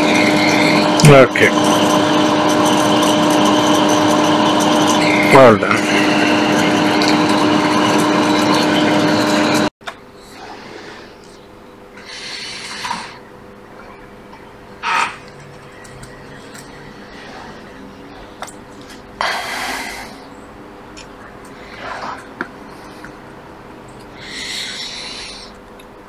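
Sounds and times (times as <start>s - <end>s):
cotton ball scrubbing circuit board: 0.0s - 9.7s
low machine hum: 0.0s - 26.0s.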